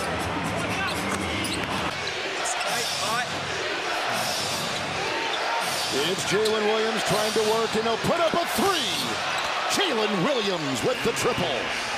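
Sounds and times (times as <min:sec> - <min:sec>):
crowd noise: 0:00.0 - 0:11.9
sneakers squeaking on court: 0:00.9 - 0:03.0.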